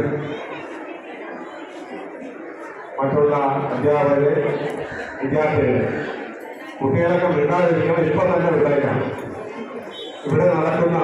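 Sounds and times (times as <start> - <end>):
man speaking into a microphone: 0.0 - 0.4, 3.0 - 6.2, 6.8 - 9.5, 10.2 - 11.0
audience chatter: 0.0 - 11.0.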